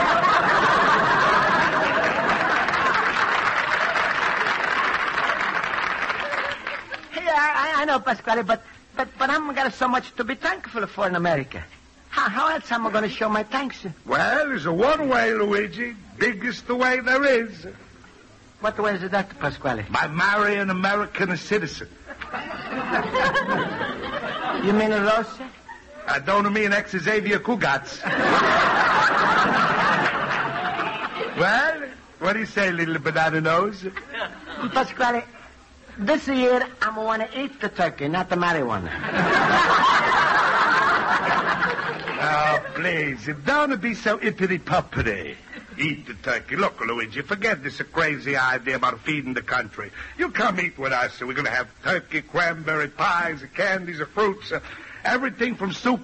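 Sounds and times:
studio audience laughing: 0:00.0 - 0:07.1, 0:22.0 - 0:26.1, 0:28.0 - 0:31.8, 0:33.9 - 0:35.6, 0:38.8 - 0:43.0
audience applauding: 0:00.0 - 0:07.2, 0:40.0 - 0:42.8.

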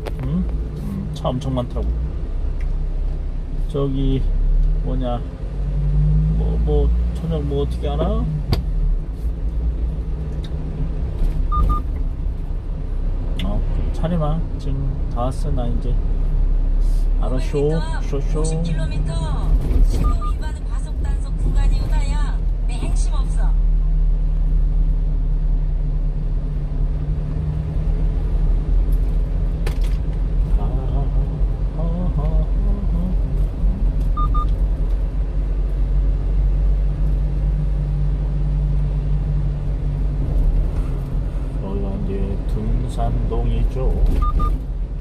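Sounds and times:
road noise: 0:00.0 - 0:45.0
truck engine drone: 0:00.0 - 0:45.0.

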